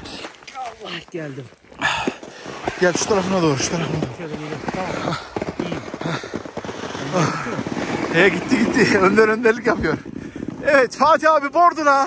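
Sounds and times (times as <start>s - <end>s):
crunching and scraping in snow: 0.0s - 12.0s
men's voices: 0.0s - 12.0s.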